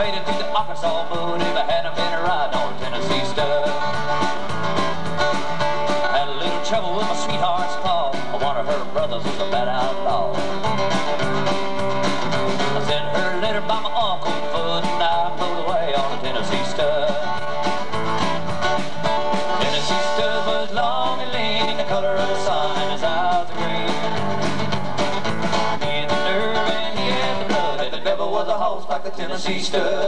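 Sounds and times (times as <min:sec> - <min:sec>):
lead guitar bending notes: 0:00.0 - 0:27.7
electric bass: 0:00.0 - 0:28.2
drum kit beat: 0:00.0 - 0:28.4
strummed acoustic guitars: 0:00.0 - 0:30.0.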